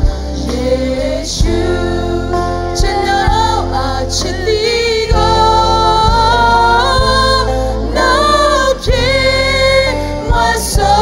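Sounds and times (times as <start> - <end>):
bass notes: 0.0 - 11.0
electric guitars: 0.0 - 11.0
live band with singing: 0.0 - 11.0.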